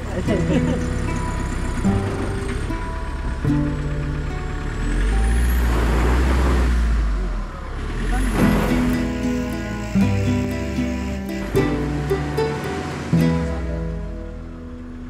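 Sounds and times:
engine running under load: 0:00.0 - 0:15.0
background music: 0:08.4 - 0:15.0.

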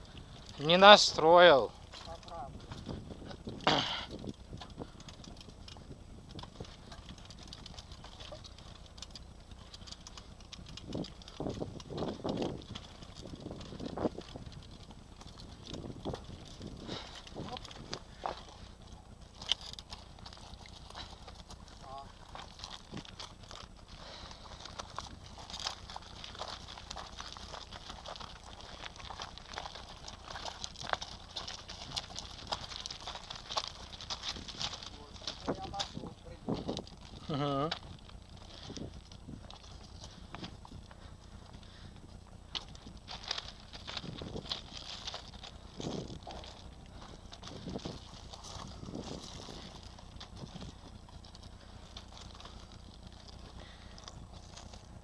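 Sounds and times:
bicycle rattling on dirt track: 0:00.0 - 0:55.0
footsteps on gravel: 0:00.0 - 0:55.0.

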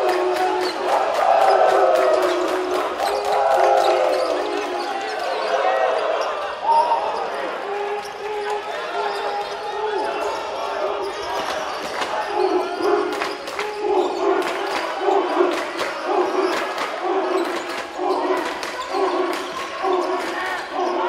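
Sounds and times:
crowd chanting: 0:00.0 - 0:21.0.

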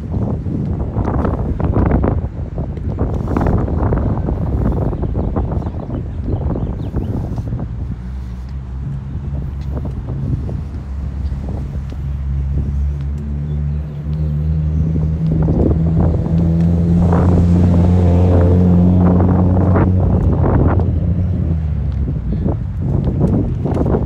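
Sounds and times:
vehicle engine humming: 0:00.0 - 0:24.0.

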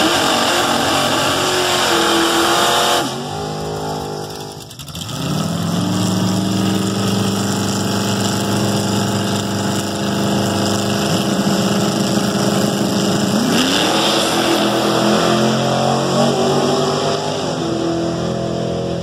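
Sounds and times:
drag car engine revving: 0:00.0 - 0:19.0.

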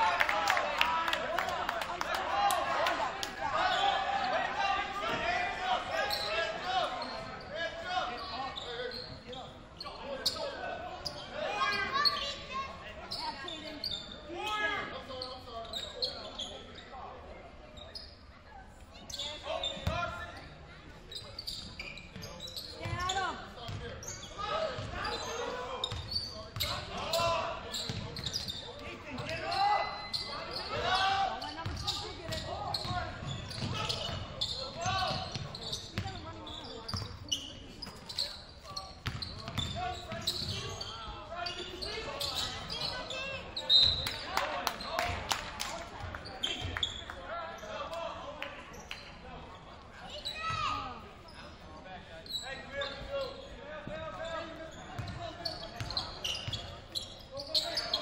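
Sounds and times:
people calling out echoing: 0:00.0 - 0:07.0.

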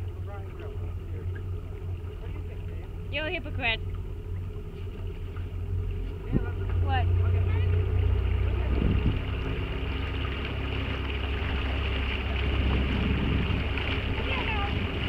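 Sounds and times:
motorboat engine running: 0:00.0 - 0:15.0.

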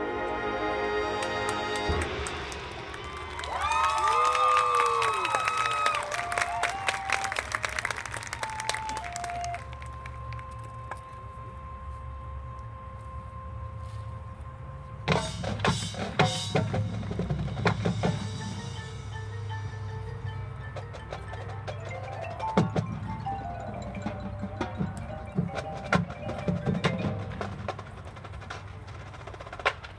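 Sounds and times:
marching band playing: 0:00.0 - 0:29.9
drum and percussion hits: 0:01.2 - 0:03.2, 0:15.1 - 0:29.9.

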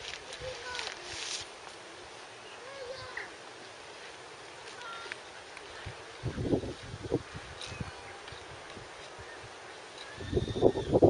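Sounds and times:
goats rustling and scuffling: 0:00.0 - 0:10.6.

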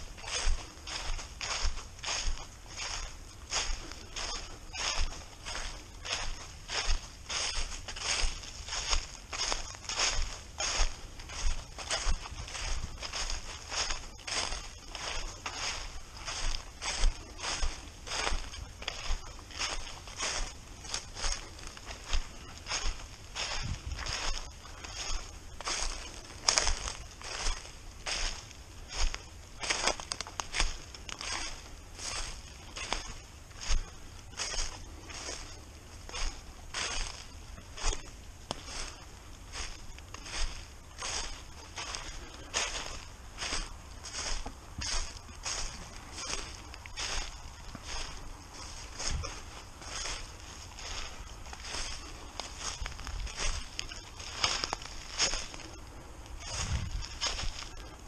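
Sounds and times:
footsteps crunching dry leaves: 0:00.0 - 0:58.0.

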